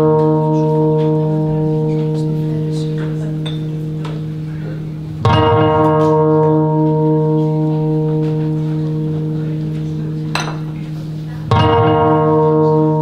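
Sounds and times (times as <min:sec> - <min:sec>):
guitar chord ringing: 0:00.0 - 0:13.0.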